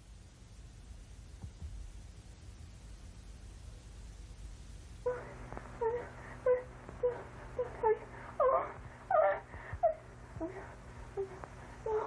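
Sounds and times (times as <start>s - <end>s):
high whimpering moans: 5.1s - 12.0s.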